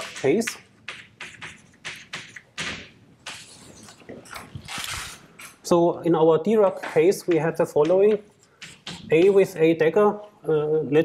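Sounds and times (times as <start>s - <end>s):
chalk writing on blackboard: 0.0s - 2.5s, 6.8s - 9.5s.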